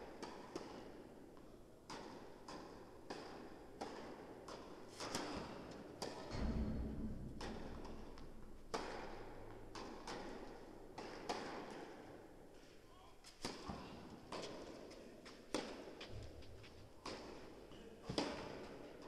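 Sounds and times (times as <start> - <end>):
tennis ball struck by rackets: 0.0 - 1.1, 1.8 - 12.4, 13.3 - 14.8, 15.5 - 16.3, 17.0 - 18.9.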